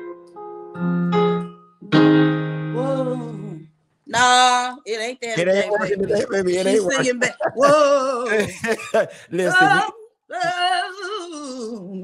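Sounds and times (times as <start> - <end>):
piano chords: 0.0 - 3.7
person humming: 5.4 - 12.0.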